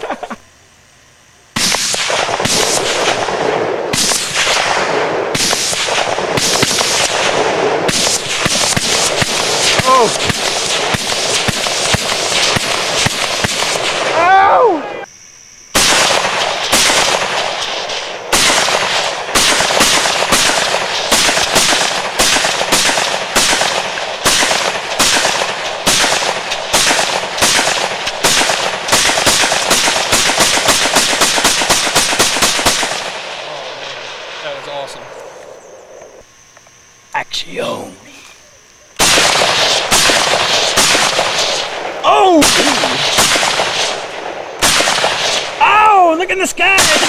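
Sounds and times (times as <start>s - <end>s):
rifle gunfire: 1.6s - 14.2s, 15.7s - 35.1s, 39.0s - 45.6s, 46.7s - 47.0s.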